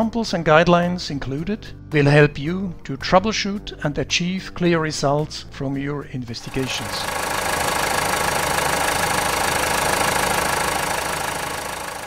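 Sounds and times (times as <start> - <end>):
diesel engine idling: 6.4 - 12.0.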